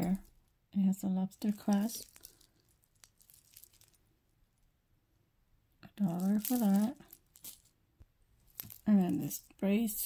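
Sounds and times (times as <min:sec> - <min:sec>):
jewelry clinking: 0:01.3 - 0:04.6, 0:05.9 - 0:07.8, 0:08.4 - 0:10.0.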